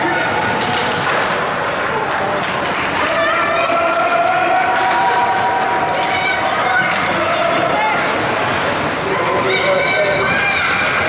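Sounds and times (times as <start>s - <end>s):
ice rink background noise: 0.0s - 11.0s.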